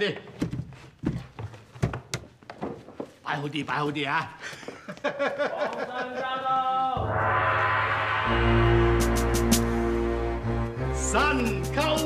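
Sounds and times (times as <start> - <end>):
wooden chests knocking and thudding: 0.3 - 3.2.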